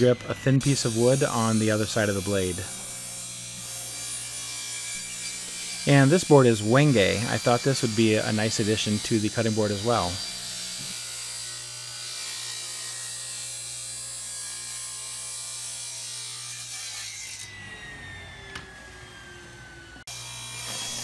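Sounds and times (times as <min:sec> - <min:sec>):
table saw ripping wood: 0:00.0 - 0:21.0.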